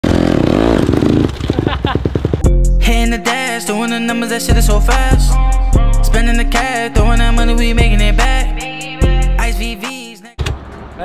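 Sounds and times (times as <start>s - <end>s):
dirt bike engine revving: 0.0s - 2.5s.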